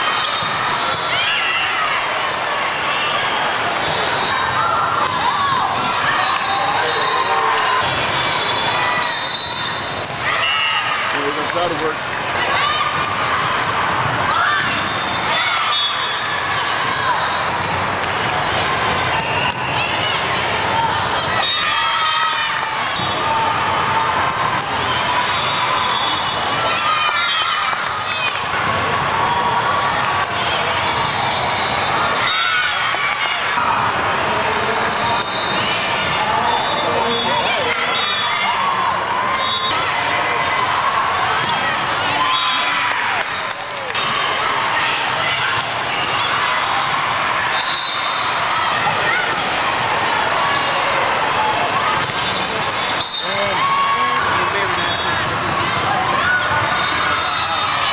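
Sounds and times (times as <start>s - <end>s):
crowd chatter: 0.0s - 57.9s
many overlapping voices: 0.0s - 57.9s
volleyball impacts: 51.6s - 53.6s.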